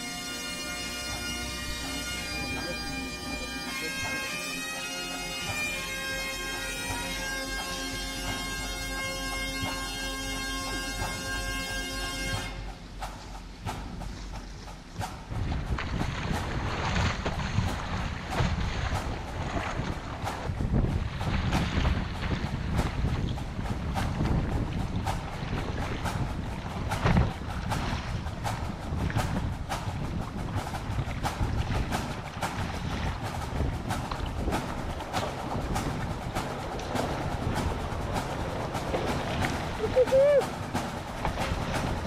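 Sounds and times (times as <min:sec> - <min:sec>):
water splashing along kayak hull: 0:00.0 - 0:42.0
wind buffeting microphone: 0:12.2 - 0:42.0.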